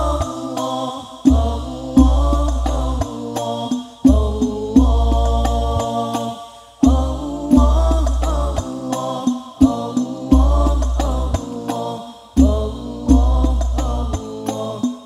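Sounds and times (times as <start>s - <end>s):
men chanting in unison: 0.0s - 15.0s.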